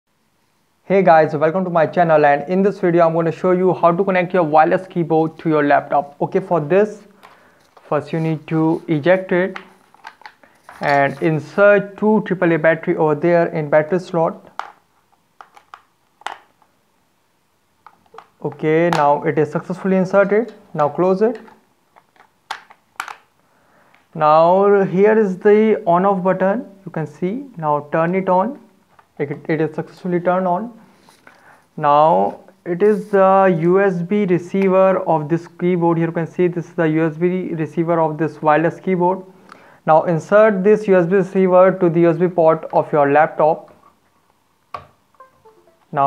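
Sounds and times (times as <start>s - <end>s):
plastic cover snapping clicks: 9.5s - 10.4s, 15.4s - 16.6s, 21.4s - 23.3s.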